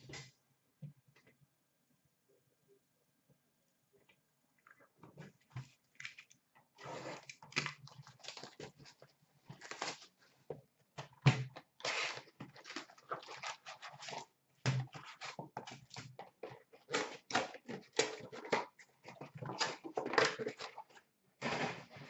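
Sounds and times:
card pack wrappers crinkling and tearing: 7.2s - 10.2s.

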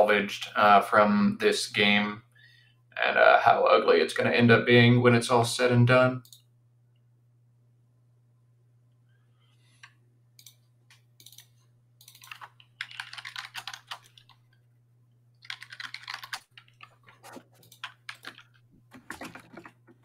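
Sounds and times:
low electrical hum: 0.0s - 20.0s
typing on computer keyboard: 11.2s - 14.4s, 15.4s - 20.0s.

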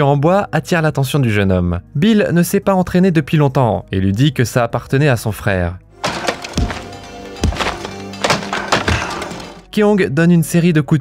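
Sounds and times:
background music: 0.0s - 11.0s
hands striking wooden dummy: 6.0s - 9.6s.

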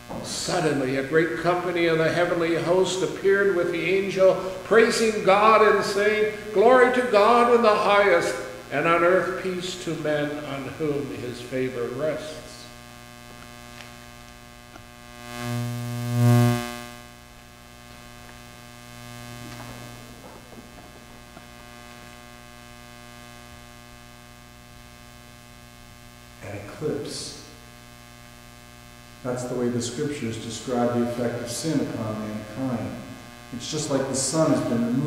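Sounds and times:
electrical mains hum: 0.0s - 35.0s.

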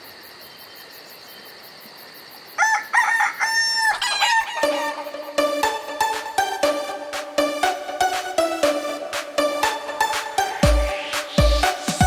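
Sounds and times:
rooster crowing: 2.6s - 5.2s
upbeat music with beat: 4.4s - 12.0s.

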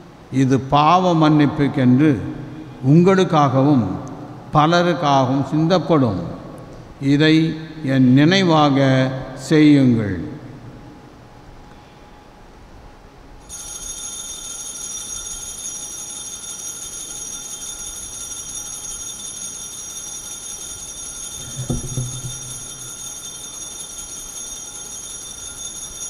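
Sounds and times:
altar bells ringing: 13.4s - 26.0s
short soft knock: 21.4s - 22.5s.

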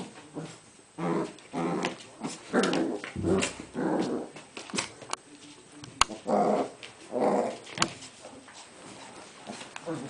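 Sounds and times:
dogs growling: 0.0s - 4.5s, 6.1s - 7.8s, 9.1s - 10.0s.

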